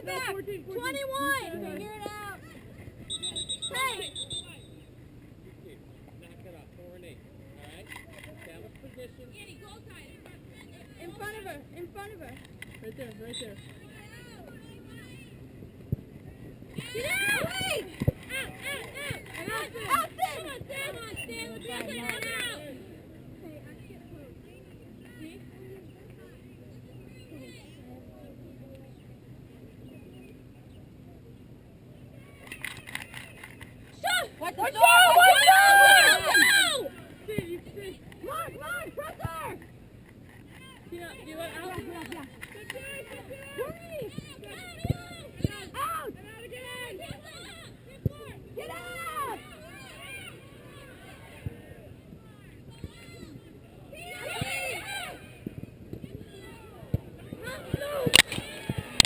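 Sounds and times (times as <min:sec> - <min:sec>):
distant indistinct voices: 0:00.0 - 0:59.0
faint shouts and chatter: 0:00.0 - 0:59.0
shrill whistle: 0:03.1 - 0:04.8.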